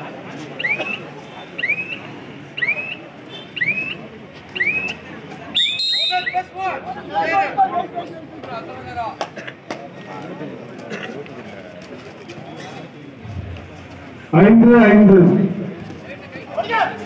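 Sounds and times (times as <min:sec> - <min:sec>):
crowd noise: 0:00.0 - 0:17.0
shrill whistle blast: 0:05.6 - 0:06.4.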